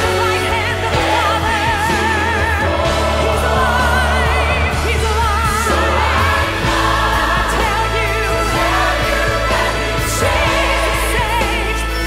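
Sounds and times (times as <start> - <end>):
band playing: 0.0 - 12.0
choir singing: 0.0 - 12.0
woman singing with vibrato: 0.0 - 12.0.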